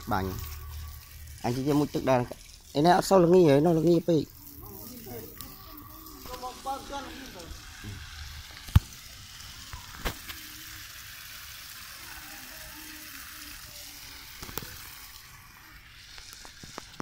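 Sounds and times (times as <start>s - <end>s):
garden hose spraying water: 0.0s - 17.0s.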